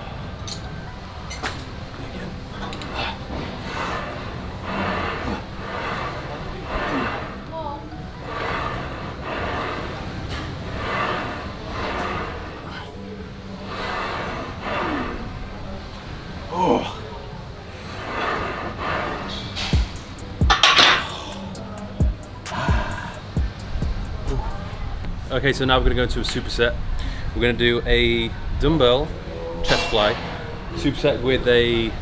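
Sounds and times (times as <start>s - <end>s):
faint background music: 0.0s - 32.0s
man breathing hard: 2.8s - 7.5s, 21.0s - 23.7s.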